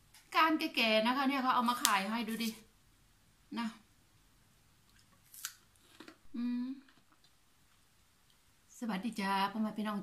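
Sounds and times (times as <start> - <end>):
crunch of biting raw vegetable: 4.9 - 6.2
person humming while chewing: 6.3 - 7.0.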